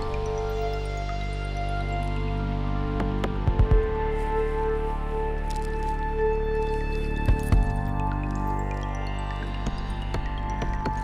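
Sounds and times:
slow relaxation music: 0.0s - 11.0s.

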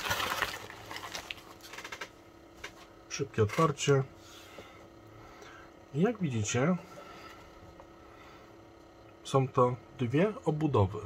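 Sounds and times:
plastic bag rustling: 0.0s - 2.1s.

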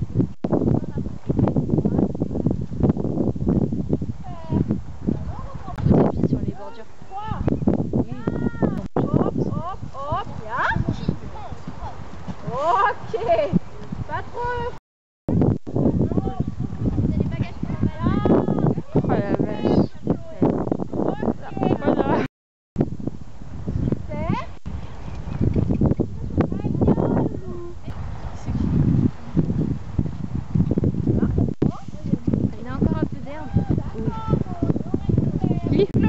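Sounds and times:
wind on microphone: 0.0s - 36.0s
people calling out and whooping: 8.1s - 11.6s, 33.0s - 35.8s
horse hoofbeats on grass: 11.3s - 12.7s.

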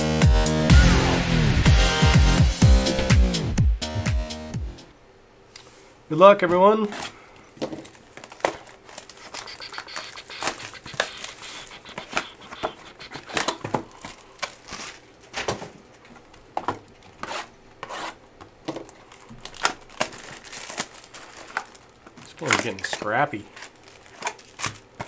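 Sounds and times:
plastic wrap crinkling and tearing: 7.8s - 15.1s, 19.1s - 25.0s.

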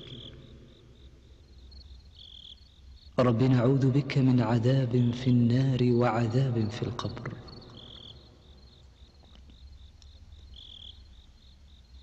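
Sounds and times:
faint crickets chirping: 0.0s - 12.0s
steady low hum: 0.0s - 12.0s.

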